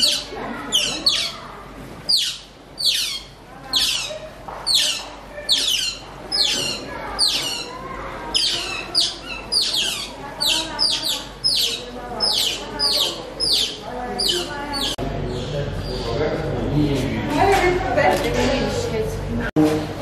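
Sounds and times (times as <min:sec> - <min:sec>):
otters chirping: 0:00.0 - 0:16.2.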